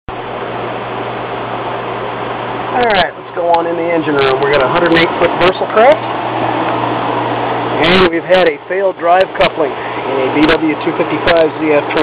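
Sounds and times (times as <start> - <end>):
engine room machinery drone: 0.1 - 12.0.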